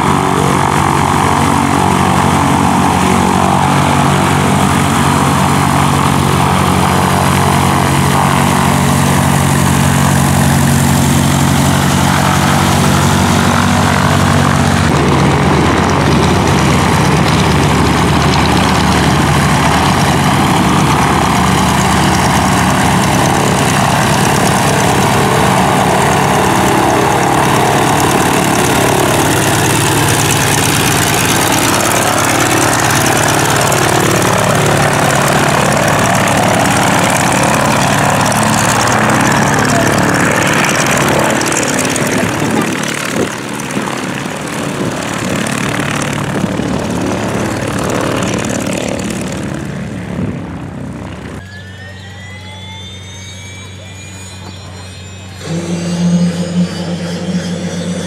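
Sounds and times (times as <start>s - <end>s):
propeller plane engine taxiing: 0.0s - 58.0s.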